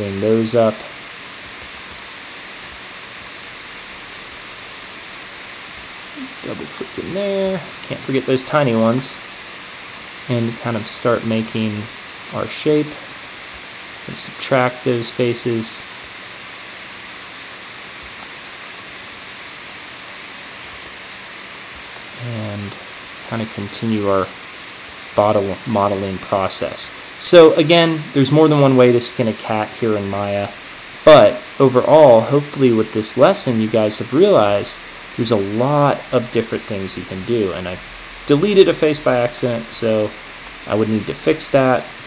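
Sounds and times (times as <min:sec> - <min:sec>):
faint low hum: 0:00.0 - 0:42.0
microphone background hiss: 0:00.0 - 0:42.0
voice-over speech: 0:06.2 - 0:09.2, 0:25.2 - 0:41.9
faint high ticks: 0:15.2 - 0:16.5.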